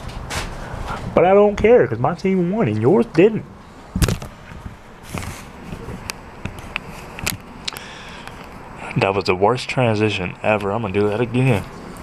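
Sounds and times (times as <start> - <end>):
hand rubbing against microphone: 4.3 - 7.2.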